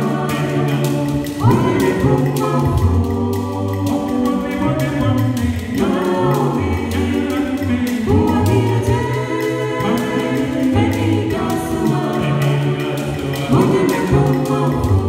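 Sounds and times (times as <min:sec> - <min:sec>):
a cappella group singing: 0:00.0 - 0:15.0
gourd shaker rhythm: 0:00.0 - 0:15.0.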